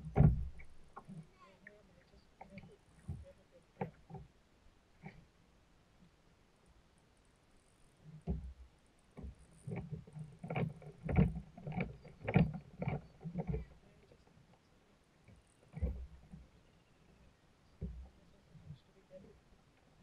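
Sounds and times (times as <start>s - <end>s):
hollow knocks on kayak hull: 0.0s - 1.1s, 8.2s - 13.7s, 17.8s - 18.1s.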